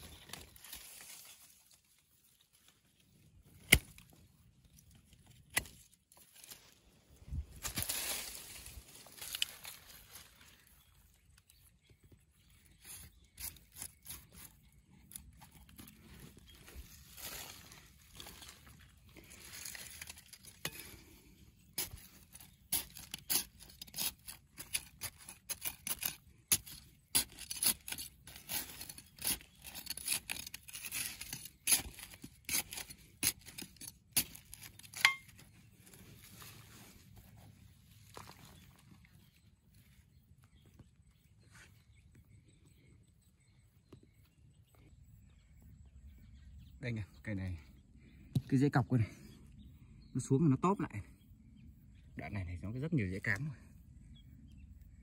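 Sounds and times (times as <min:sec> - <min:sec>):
hand tool chopping stony soil: 0:03.6 - 0:04.1, 0:12.9 - 0:15.9, 0:21.7 - 0:35.5.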